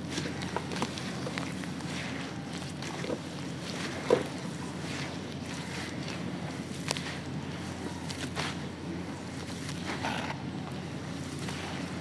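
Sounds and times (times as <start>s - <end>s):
hands squelching wet cement: 0.0s - 12.0s.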